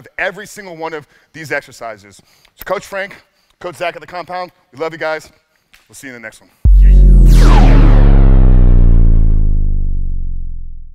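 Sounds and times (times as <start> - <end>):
deep bass boom ringing: 6.7 - 10.9.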